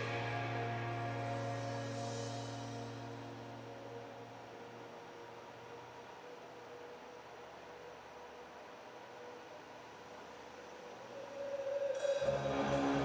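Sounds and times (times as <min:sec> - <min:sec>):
faint hiss and hum: 0:00.0 - 0:13.0.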